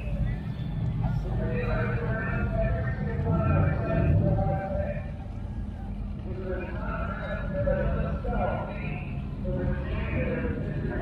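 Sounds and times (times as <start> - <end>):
steady low rumble: 0.0 - 11.0
man speaking over public address: 1.0 - 5.3, 6.2 - 11.0.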